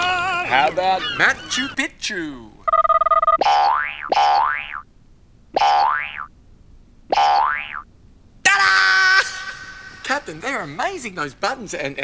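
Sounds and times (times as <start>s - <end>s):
cartoon boing sound effect: 3.4s - 4.8s, 5.6s - 6.3s, 7.1s - 7.8s.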